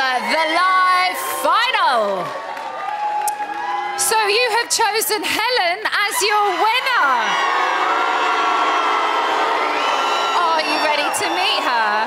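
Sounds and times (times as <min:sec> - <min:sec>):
audience cheering and screaming: 0:00.0 - 0:04.9, 0:05.9 - 0:12.0.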